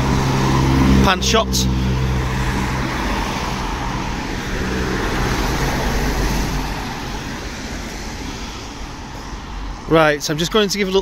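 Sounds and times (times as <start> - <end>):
traffic engines: 0.0 - 11.0
tyres hissing on wet road: 0.0 - 11.0.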